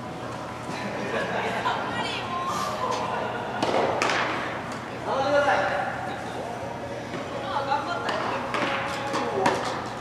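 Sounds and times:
tennis balls struck by rackets: 3.6 - 4.8.

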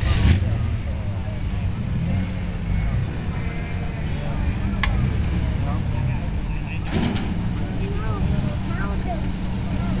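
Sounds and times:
engine running with low rumble: 0.0 - 10.0
faint voices: 0.0 - 10.0.

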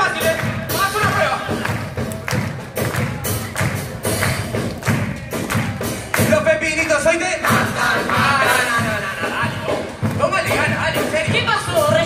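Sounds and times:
snare drum: 0.0 - 6.5
bass drum beat: 0.0 - 12.0.

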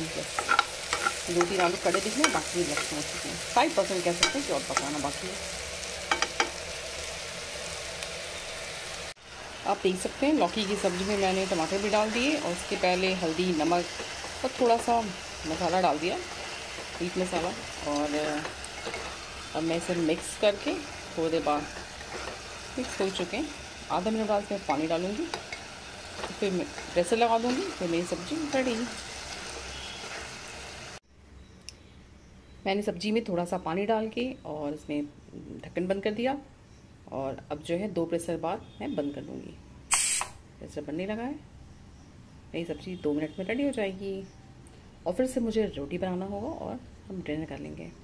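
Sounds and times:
vegetables sizzling in oil: 0.0 - 31.0, 39.9 - 40.4.

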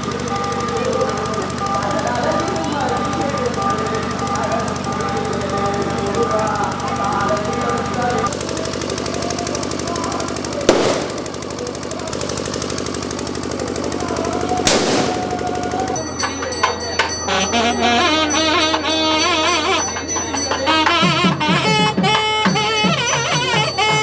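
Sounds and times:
firecrackers crackling: 0.0 - 16.1
firework bangs: 8.4 - 15.9.

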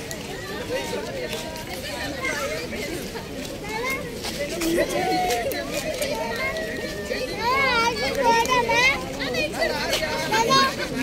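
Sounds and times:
children playing: 0.0 - 11.0
people chattering: 0.0 - 11.0.

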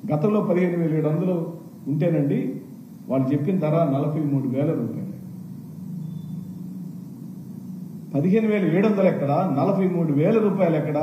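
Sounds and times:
faint room hiss: 0.0 - 11.0
steady low hum: 0.0 - 11.0.

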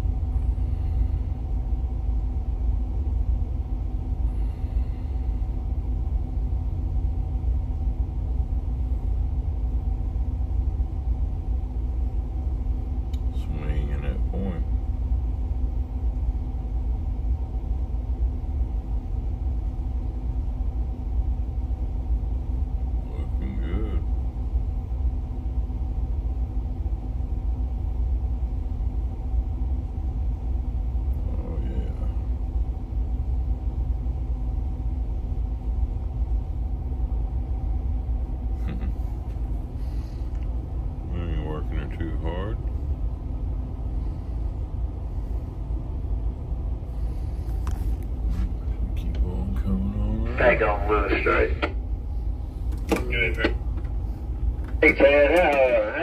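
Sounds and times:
diesel engines rumbling: 46.9 - 56.0
person speaking: 49.0 - 51.8, 54.7 - 56.0.

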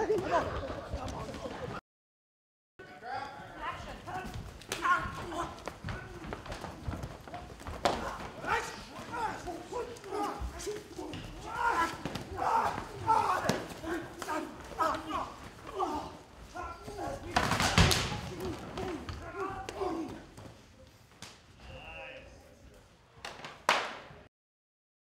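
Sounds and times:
men's voices: 2.8 - 20.5.

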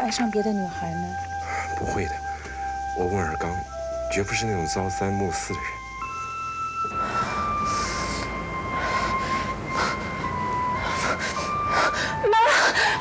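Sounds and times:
slow background music: 0.0 - 13.0
woman breathing heavily and gasping: 6.9 - 13.0
woman moaning: 6.9 - 13.0.

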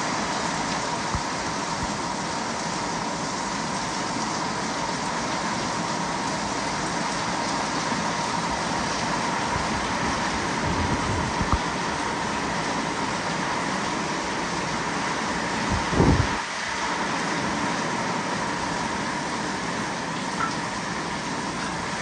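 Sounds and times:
heavy rain on a roof: 0.0 - 22.0.

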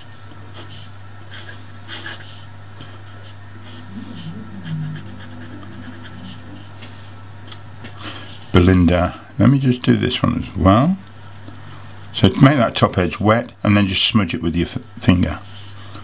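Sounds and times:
steady low hum: 0.0 - 13.6.

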